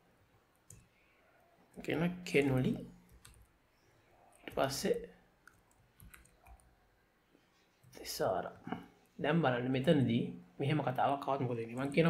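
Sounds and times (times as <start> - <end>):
computer keyboard keystrokes: 5.4 - 6.6.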